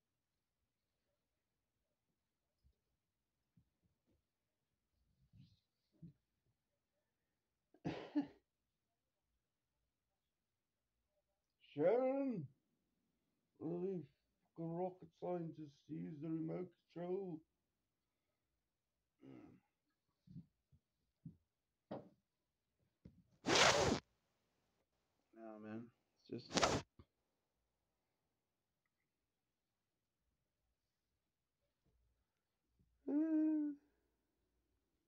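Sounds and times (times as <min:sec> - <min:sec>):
person clearing throat with cough: 0:07.8 - 0:08.4.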